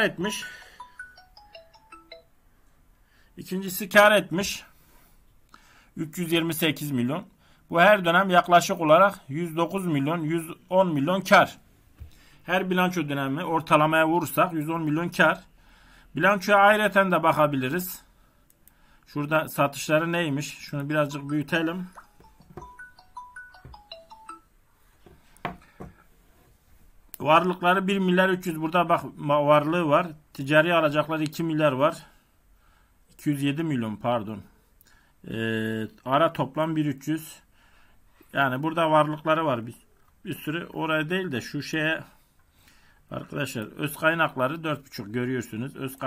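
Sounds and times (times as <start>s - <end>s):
phone ringtone beeps: 0.2s - 2.4s, 21.1s - 24.5s.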